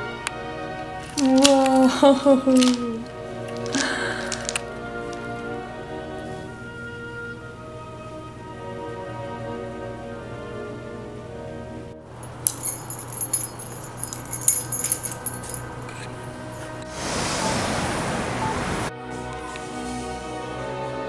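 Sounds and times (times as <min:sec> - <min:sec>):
background music: 0:00.0 - 0:17.0, 0:18.5 - 0:21.0
light clinking and jangling: 0:00.9 - 0:05.3, 0:12.1 - 0:16.9
rustling near microphone: 0:12.1 - 0:17.7.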